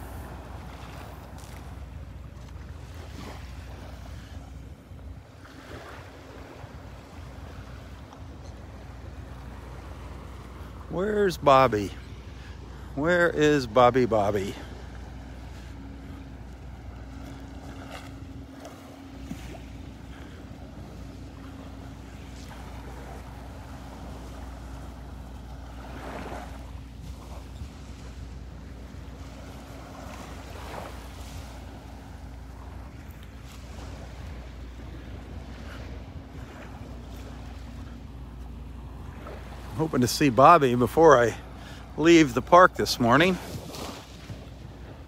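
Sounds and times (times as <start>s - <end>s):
faint steady hum: 0.0s - 45.0s
small waves lapping: 0.0s - 45.0s.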